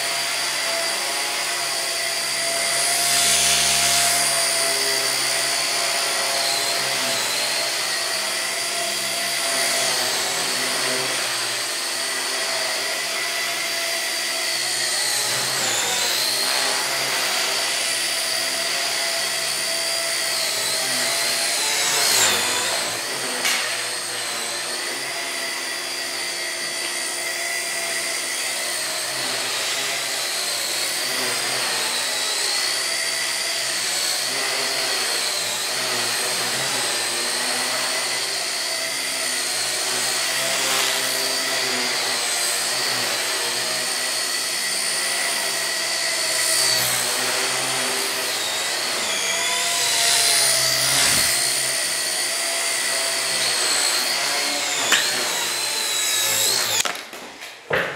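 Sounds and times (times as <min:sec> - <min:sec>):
electric motors whining: 0:00.0 - 0:57.5
helicopter rotors buzzing: 0:41.6 - 0:57.2.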